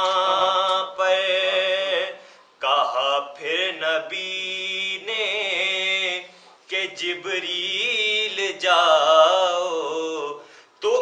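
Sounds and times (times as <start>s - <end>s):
man chanting unaccompanied: 0.0s - 11.0s.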